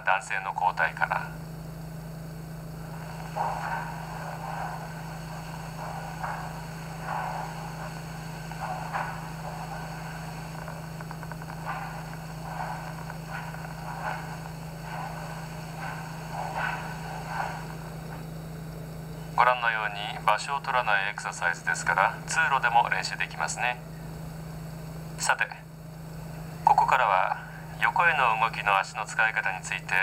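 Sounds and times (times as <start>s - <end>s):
low hum: 0.8s - 20.5s.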